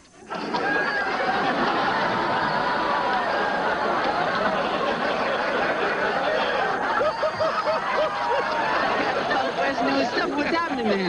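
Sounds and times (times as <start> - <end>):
audience laughing: 0.2 - 11.0
person laughing hard: 0.3 - 11.0.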